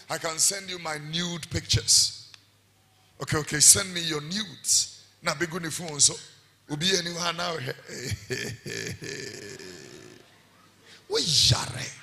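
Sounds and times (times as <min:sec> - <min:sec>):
man laughing: 0:07.9 - 0:10.2.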